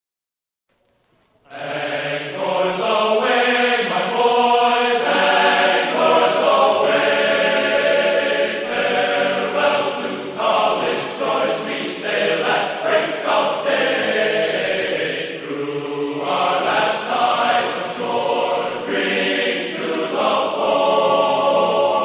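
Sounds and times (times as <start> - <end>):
choir singing held notes: 1.4 - 22.0.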